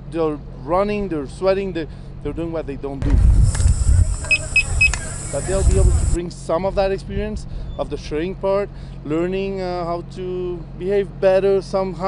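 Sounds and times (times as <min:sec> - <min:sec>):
low rumble: 0:03.0 - 0:08.0
steady hiss: 0:03.4 - 0:06.2
short high-pitched beeps: 0:03.6 - 0:06.2.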